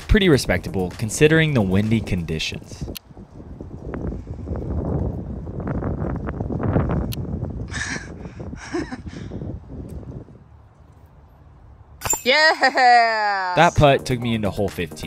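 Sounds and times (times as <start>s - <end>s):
wind buffeting microphone: 0.0s - 11.9s.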